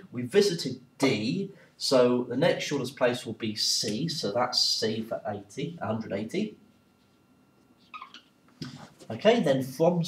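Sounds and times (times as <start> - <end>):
whiteboard marker squeaking: 7.8 - 8.8.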